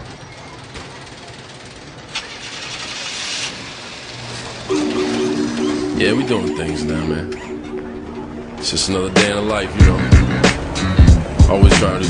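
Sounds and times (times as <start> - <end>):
car engine cranking and starting: 0.2 - 6.3
sustained musical notes: 4.6 - 11.4.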